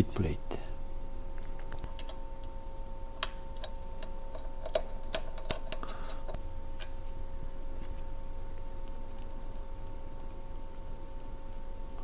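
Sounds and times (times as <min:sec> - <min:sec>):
faint steady hum: 0:00.0 - 0:12.0
tools and small parts clicking: 0:03.6 - 0:06.9.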